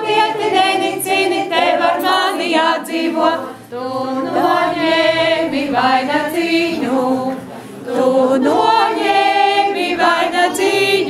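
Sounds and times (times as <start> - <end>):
choir singing unaccompanied: 0.0 - 11.0
singer breath: 7.4 - 7.9.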